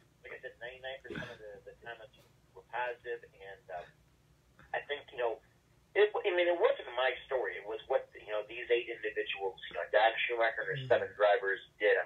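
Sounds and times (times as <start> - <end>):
man speaking over telephone: 0.2 - 3.9, 4.7 - 5.4, 6.0 - 12.0.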